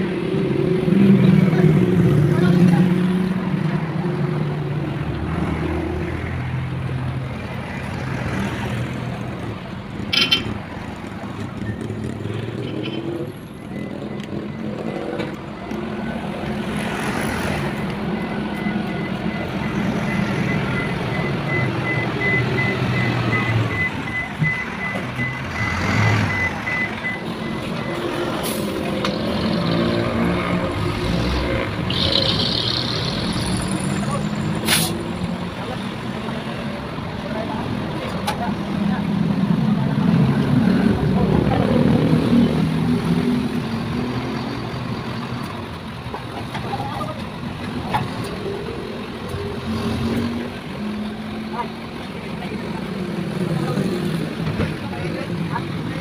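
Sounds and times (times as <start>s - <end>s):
passing road traffic: 0.0s - 56.0s.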